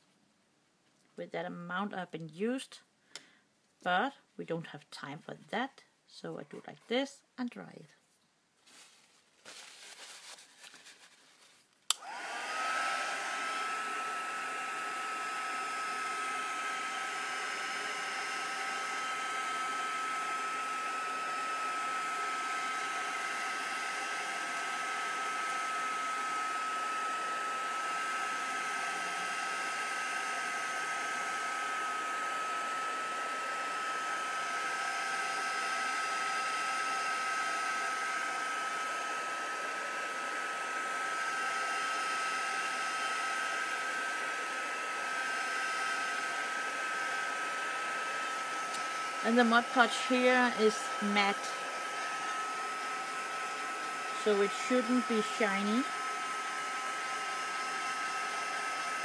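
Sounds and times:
hot-air dryer blowing: 11.9 - 59.0.

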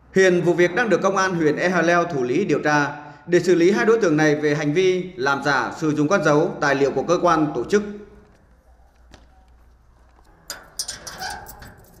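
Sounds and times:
metal door and padlock clanking: 10.2 - 12.0.

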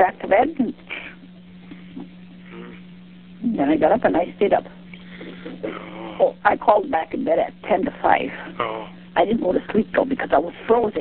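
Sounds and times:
telephone line hum: 0.0 - 11.0.

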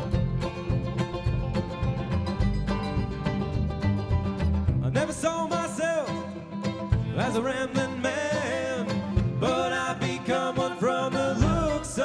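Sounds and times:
bass line: 0.0 - 12.0
picked mandolin: 0.0 - 12.0
person singing: 4.8 - 12.0.

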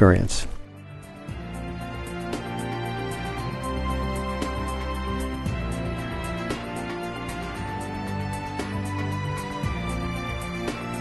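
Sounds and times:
background music with light beat: 0.6 - 11.0.

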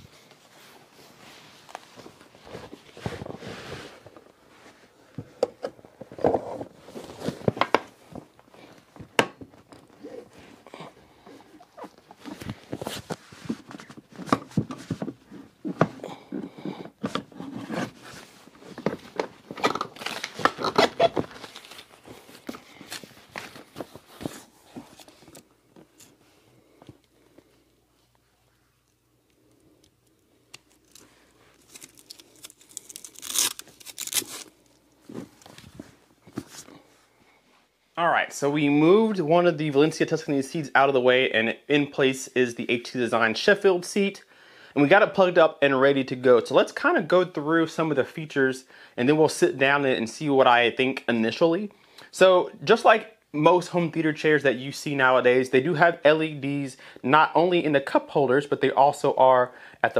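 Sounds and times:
loud tearing: 31.6 - 34.6.

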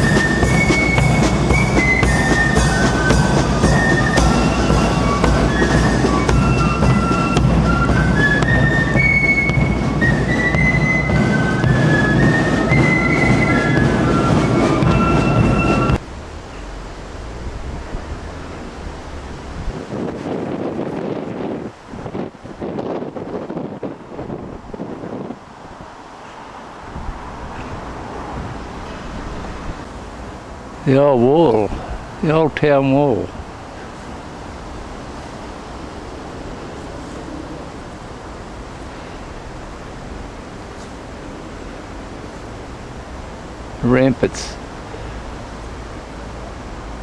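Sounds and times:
military marching band playing: 0.0 - 16.0
outdoor background noise: 0.0 - 47.0.

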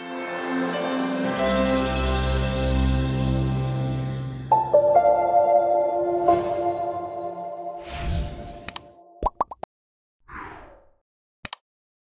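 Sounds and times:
music: 0.0 - 9.2.

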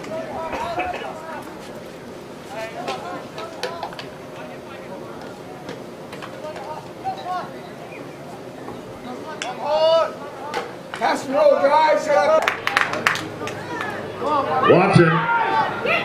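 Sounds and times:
people shouting and chattering: 0.0 - 16.0.

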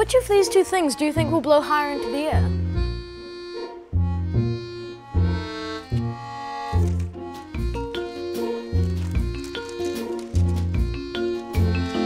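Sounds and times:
light reedy background music: 0.0 - 12.0.

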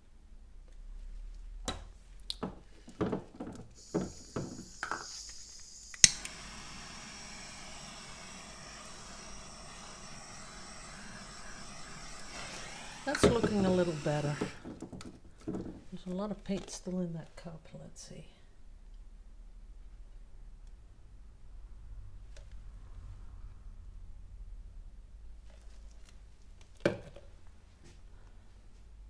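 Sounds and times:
butane torch hissing: 3.6 - 14.8
torch ignition click: 3.8 - 14.6.

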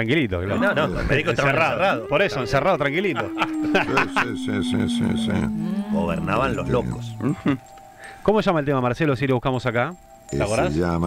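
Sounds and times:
people talking: 0.0 - 7.6, 8.3 - 11.0
cow mooing low: 0.5 - 7.6.

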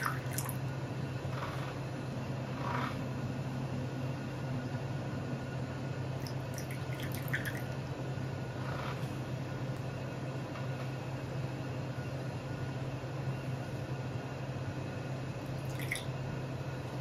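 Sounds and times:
tea pouring into cup: 0.0 - 0.6, 6.2 - 7.7, 15.6 - 16.1
steady low hum: 0.0 - 17.0.

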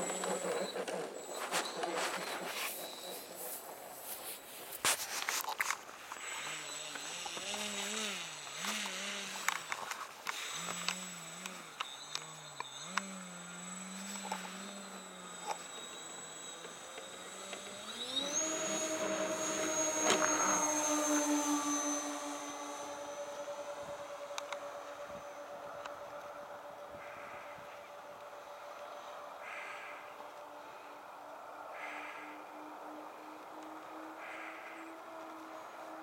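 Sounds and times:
model plane motors whining: 0.0 - 36.0.

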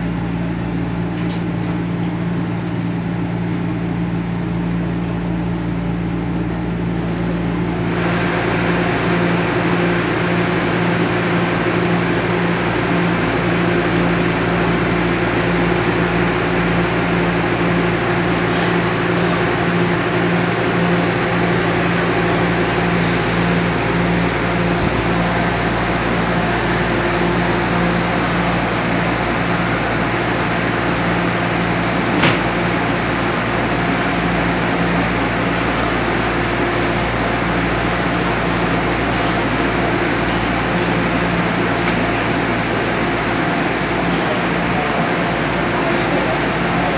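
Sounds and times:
air-conditioning humming: 0.0 - 46.9.

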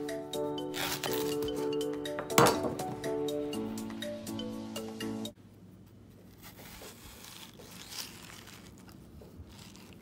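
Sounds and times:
background music: 0.0 - 5.4.

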